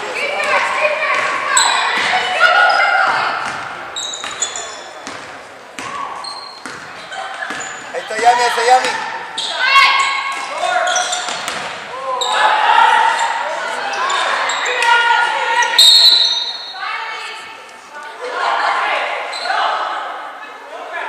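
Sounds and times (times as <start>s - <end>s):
voices shouting: 0.1s - 4.8s, 7.1s - 17.4s
referee's whistle: 15.8s - 16.8s.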